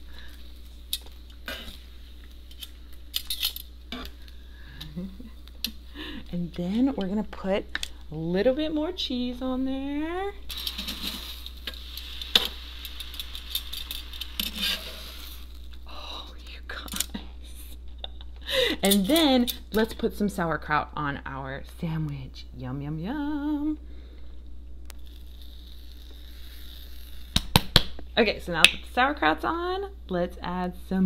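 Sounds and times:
griddle sizzling: 0:00.0 - 0:04.7, 0:10.4 - 0:15.8, 0:24.8 - 0:27.6
steady low hum: 0:00.0 - 0:31.0.

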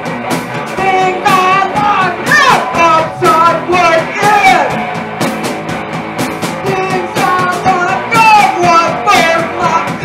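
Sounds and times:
live noise-pop band with drums: 0:00.0 - 0:10.0.

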